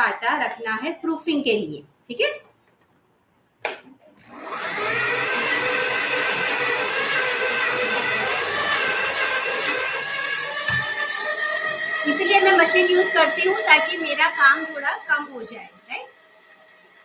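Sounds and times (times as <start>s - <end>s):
stand mixer motor whining: 4.2s - 17.0s.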